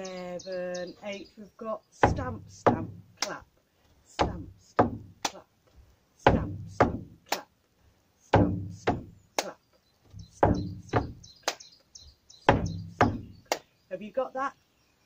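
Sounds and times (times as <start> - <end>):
boots stamping on wooden board: 2.0 - 3.4, 4.1 - 7.2, 8.4 - 9.1, 10.0 - 11.4, 12.4 - 13.6
hand clap: 7.3 - 7.5, 11.4 - 11.6.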